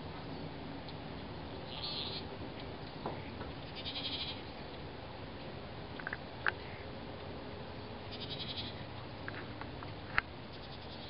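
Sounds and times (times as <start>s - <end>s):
steady background hiss: 0.0s - 11.0s
goats bleating: 3.7s - 4.5s, 8.1s - 8.9s.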